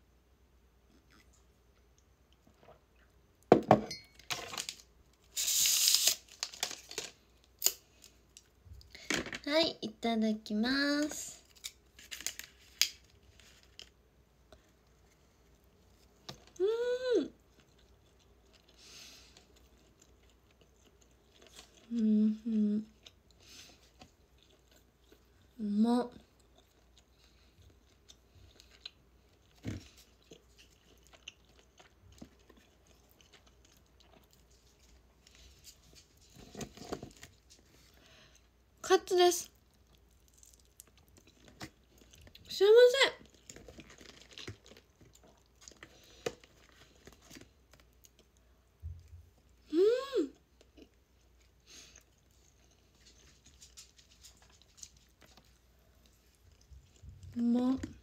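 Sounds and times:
faint chewing: 0.8 - 3.2, 17.3 - 38.6, 39.5 - 42.5, 43.2 - 58.0
wrapper crinkles and clicks: 4.2 - 8.5, 11.4 - 14.0, 43.2 - 47.9
packaging wrapper ripping: 4.4 - 7.8, 11.4 - 14.0, 43.4 - 45.1.

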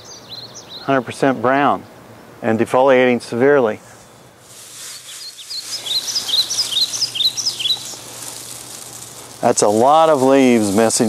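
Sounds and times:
songbird chirping: 0.0 - 10.8
dry leaves rustling: 4.0 - 11.0.

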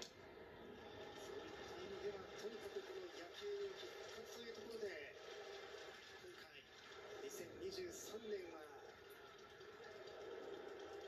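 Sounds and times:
stadium crowd through tv speaker: 0.0 - 11.0.

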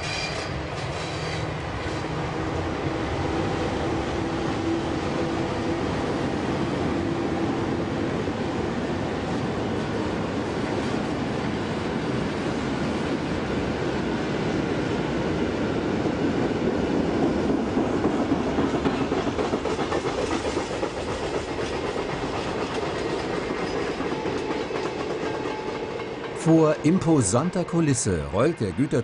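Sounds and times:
freight train rumbling past: 0.0 - 29.0.

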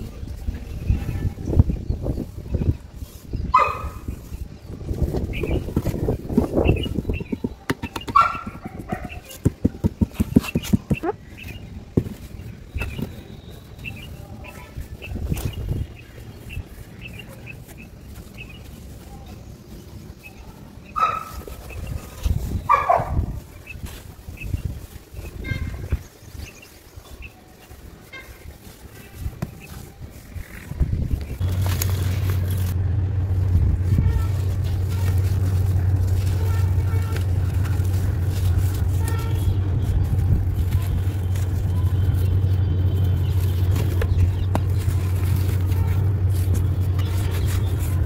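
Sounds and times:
hands crushing dry soil: 3.0 - 48.0.

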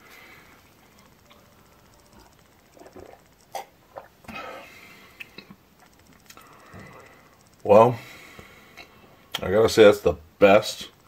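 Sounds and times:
small clicks: 0.7 - 3.6, 5.2 - 7.8
sipping and swallowing a shake: 2.2 - 4.3.

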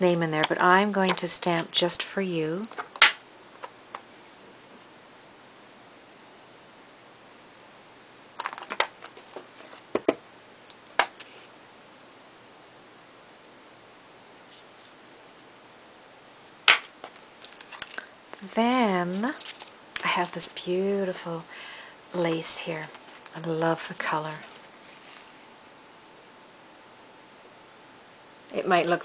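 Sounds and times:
room hiss: 0.0 - 29.0.

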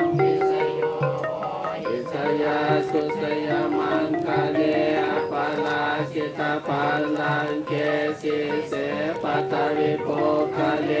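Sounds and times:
group chanting in unison: 0.2 - 11.0.

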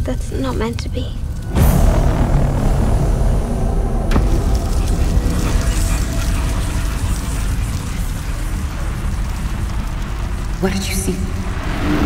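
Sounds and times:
deep rumbling drone: 0.0 - 12.0
sharp hit: 1.4 - 8.4
loud boom: 1.4 - 10.3.

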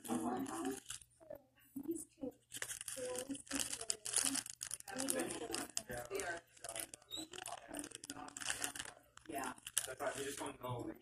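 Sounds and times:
close rustling and crackling: 0.0 - 1.2, 2.4 - 10.7
low voices: 3.0 - 11.0.

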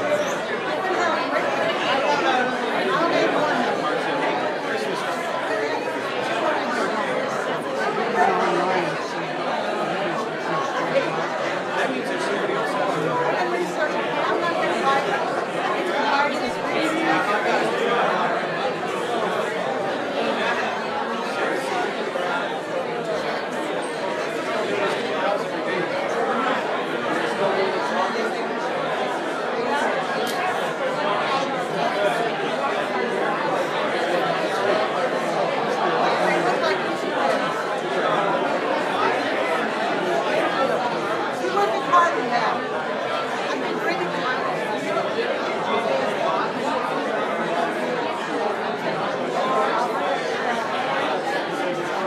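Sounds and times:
crowd of people talking: 0.0 - 52.0.

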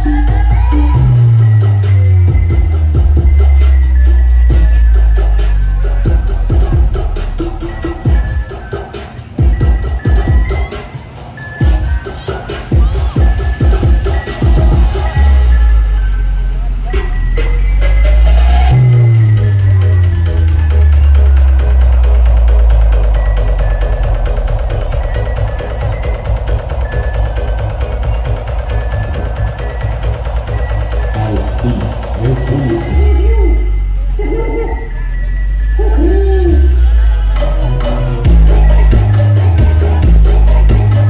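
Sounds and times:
electronic dance music: 0.0 - 41.0.

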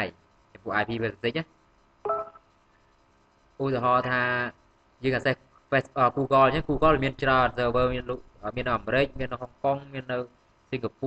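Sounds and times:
man's voice: 5.1 - 10.1.

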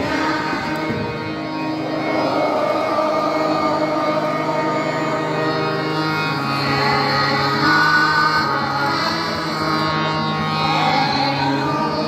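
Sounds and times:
group singing devotional song: 0.0 - 8.8.

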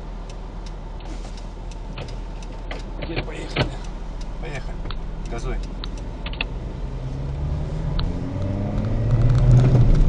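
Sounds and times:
car engine revving: 2.0 - 10.0.

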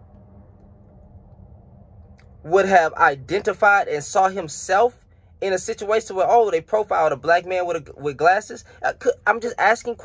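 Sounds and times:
low hum inside vehicle: 0.0 - 10.0.

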